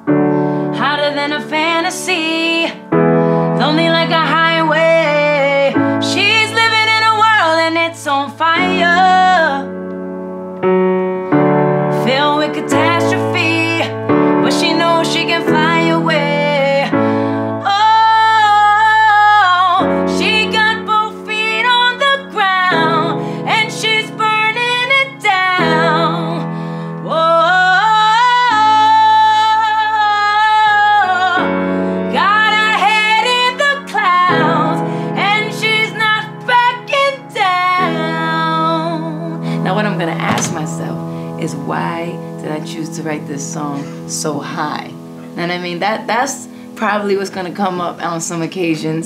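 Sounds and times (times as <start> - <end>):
woman singing: 0.0 - 9.8, 11.9 - 49.0
piano chords: 0.0 - 49.0.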